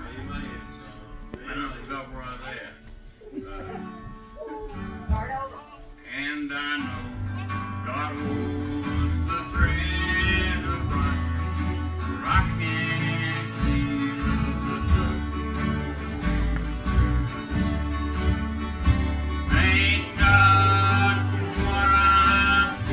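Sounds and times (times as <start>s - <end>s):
acoustic guitar strumming: 0.0s - 22.9s
low bass line: 7.0s - 22.9s.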